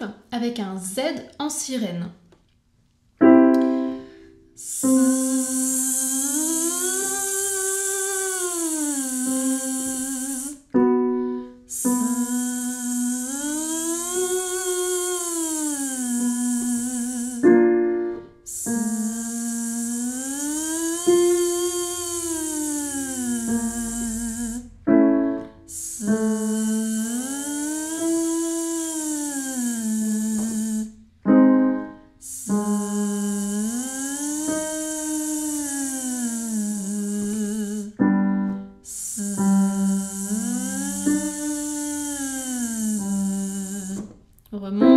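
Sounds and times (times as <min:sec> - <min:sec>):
digital piano chord: 0:03.2 - 0:07.4, 0:31.2 - 0:33.0
woman singing buzzing siren: 0:04.6 - 0:10.9, 0:11.7 - 0:17.9, 0:18.5 - 0:44.7.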